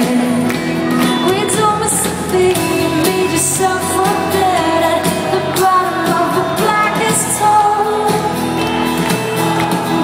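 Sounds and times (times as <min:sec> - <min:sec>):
woman singing: 0:00.0 - 0:08.7.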